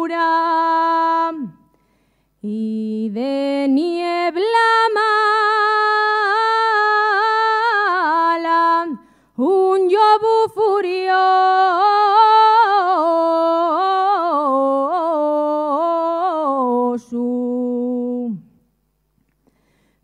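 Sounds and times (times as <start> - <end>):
woman singing unaccompanied: 0.0 - 1.6, 2.4 - 18.6.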